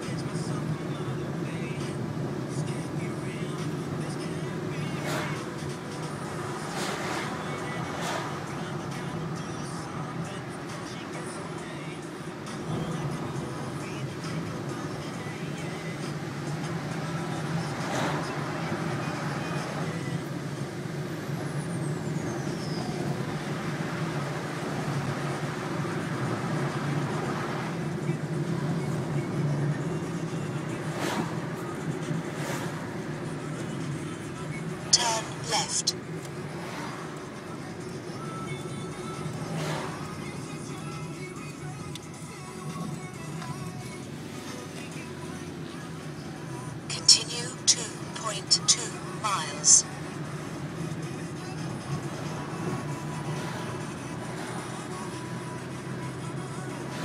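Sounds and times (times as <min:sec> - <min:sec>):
car engine hum: 0:00.0 - 0:57.0
road noise: 0:00.0 - 0:57.0.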